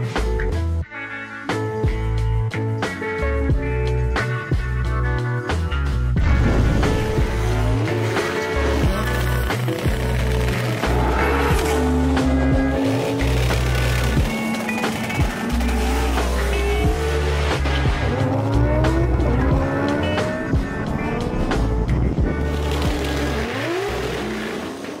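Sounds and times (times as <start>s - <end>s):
music with heavy bass and beat: 1.8s - 23.4s.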